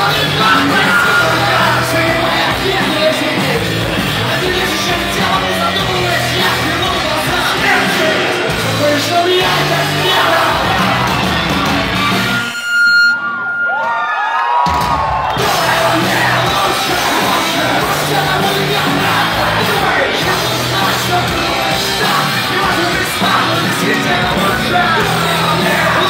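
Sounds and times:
crowd shouting: 0.0s - 12.3s, 13.6s - 26.0s
punk rock band playing live: 0.0s - 12.6s, 14.7s - 26.0s
held high tone: 0.4s - 2.8s.

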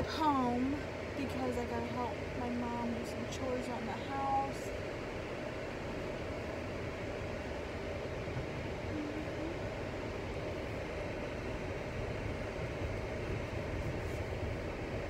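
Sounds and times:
car cabin road noise: 0.0s - 15.0s.

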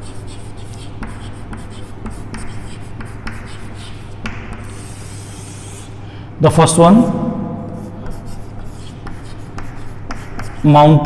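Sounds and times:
chalk tapping and scratching: 0.0s - 6.0s, 7.7s - 11.0s.

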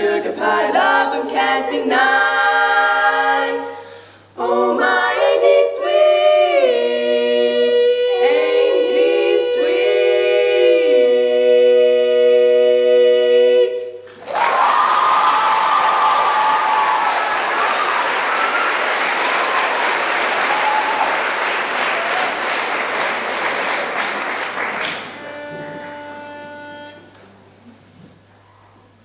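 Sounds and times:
women singing a cappella: 0.0s - 14.0s
audience applause and cheering: 14.0s - 25.2s.

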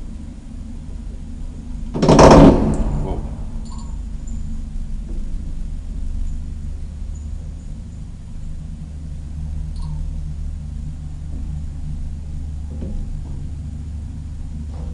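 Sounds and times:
elevator low rumble and hum: 0.0s - 14.9s
loud short burst of noise: 2.0s - 3.6s.

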